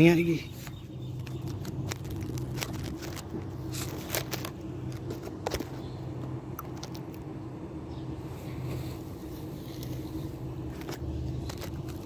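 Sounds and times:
low mechanical hum: 0.0s - 12.0s
phone being handled: 0.6s - 5.9s, 10.7s - 12.0s.

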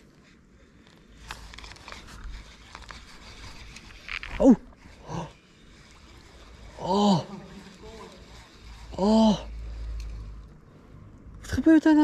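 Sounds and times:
man speaking: 7.0s - 8.3s.

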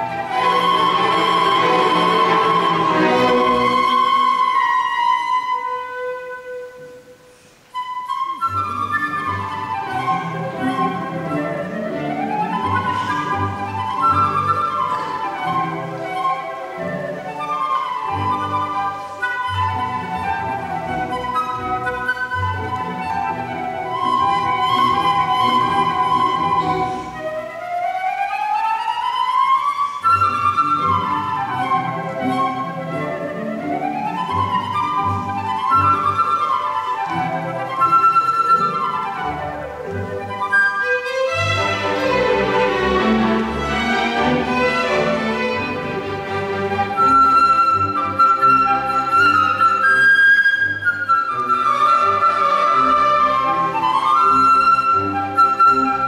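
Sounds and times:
flute playing fast runs: 0.0s - 7.0s, 7.7s - 56.0s
string orchestra: 0.0s - 56.0s.

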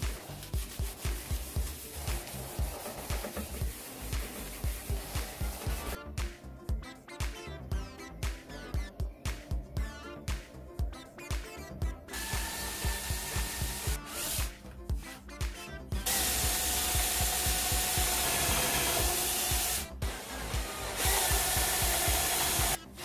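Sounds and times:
background music with steady beat: 0.0s - 23.0s
cordless drill boring into wood: 16.1s - 22.8s.

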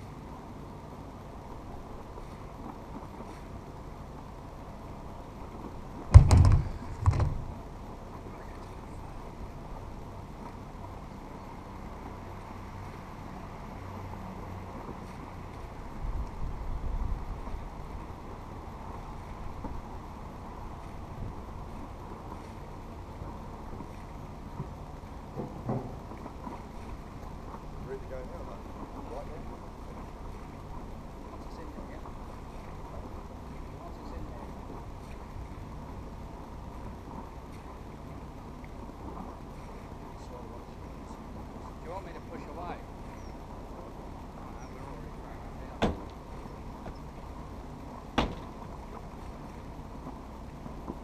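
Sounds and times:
thump: 6.1s - 7.5s, 25.4s - 26.0s, 45.8s - 46.1s, 48.2s - 48.6s.

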